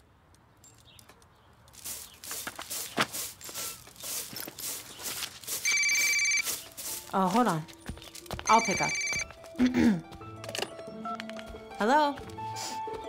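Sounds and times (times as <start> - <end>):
telephone ringing: 5.6 - 6.5, 8.4 - 9.4.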